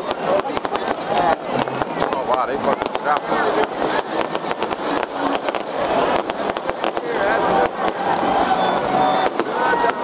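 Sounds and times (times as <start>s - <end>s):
fireworks popping and crackling: 0.0s - 10.0s
people's voices: 0.0s - 10.0s.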